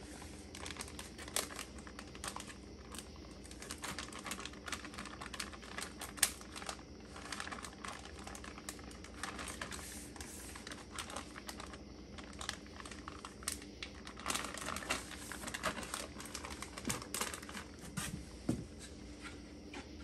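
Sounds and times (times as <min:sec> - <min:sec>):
plastic bag crinkling: 0:00.0 - 0:18.1.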